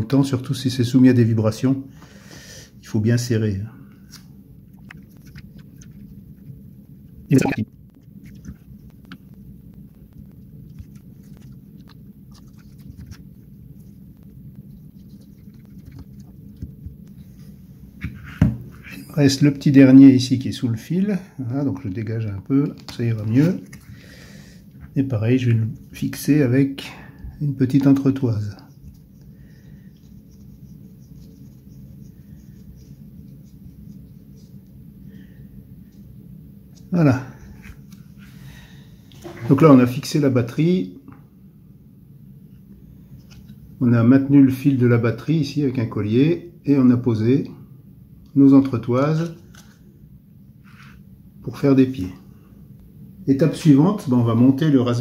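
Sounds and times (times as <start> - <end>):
low steady hum: 0.0 - 55.0
clicks and scrapes of handling: 4.1 - 6.6, 10.1 - 13.4
fingers scratching circuit board: 29.9 - 34.6.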